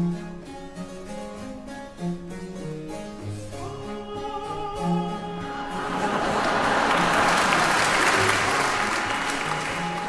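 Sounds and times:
audience applause: 0:05.8 - 0:10.0.

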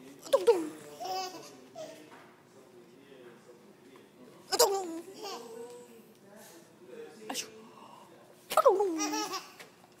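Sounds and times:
baby laughing: 0:08.8 - 0:09.6.

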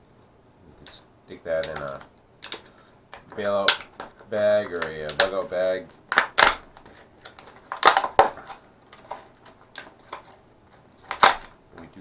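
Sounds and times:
plastic packaging crinkling: 0:00.8 - 0:12.0.

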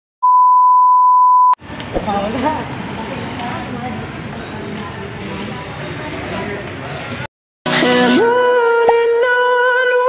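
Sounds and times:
high test tone beep: 0:00.2 - 0:01.6
people waiting background noise: 0:01.6 - 0:09.2.

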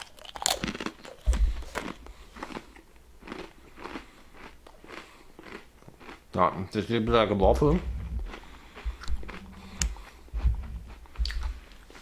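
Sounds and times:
cookie crunching: 0:00.0 - 0:06.7.

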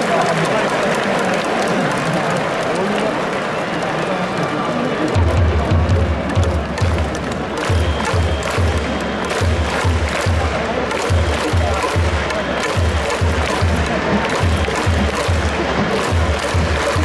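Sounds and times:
claps and clicks from stands: 0:00.0 - 0:17.0
stadium crowd noise: 0:00.0 - 0:17.0.

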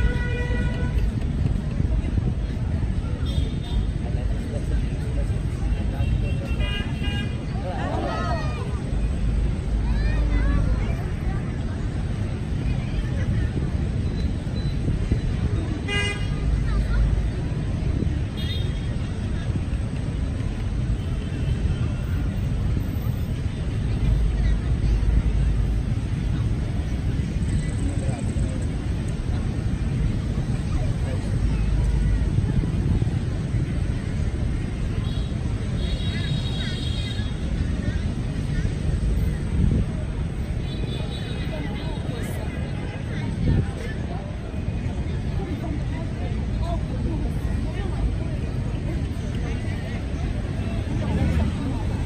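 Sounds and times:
low traffic rumble: 0:00.0 - 0:52.0
voices chattering: 0:00.0 - 0:52.0.

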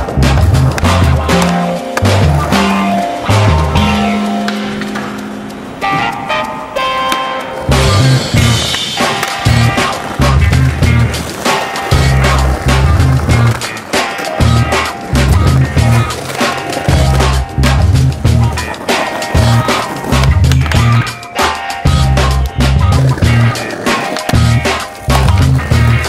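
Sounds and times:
skateboard popping and landing: 0:00.0 - 0:05.2, 0:08.6 - 0:26.0
music with bassline and beat: 0:00.0 - 0:26.0
skateboard wheels rolling on brick: 0:00.0 - 0:26.0.

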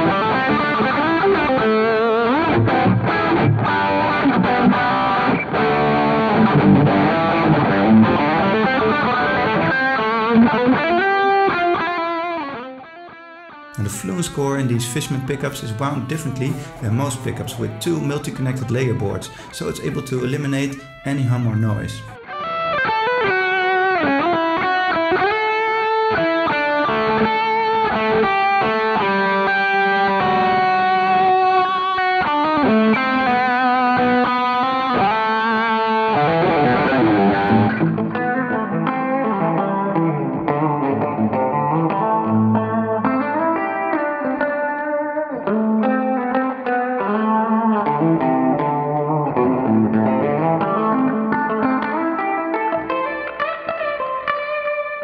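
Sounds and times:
electric guitar playing: 0:00.0 - 0:55.0.

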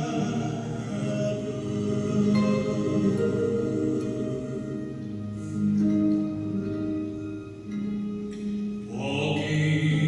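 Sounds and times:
man singing: 0:00.0 - 0:05.0, 0:08.9 - 0:10.0
sustained instrumental accompaniment: 0:00.0 - 0:09.0.

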